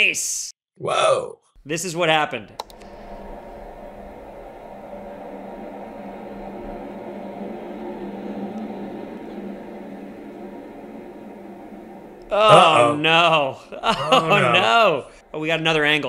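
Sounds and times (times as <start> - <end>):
rocket engines rumbling: 1.6 - 16.0.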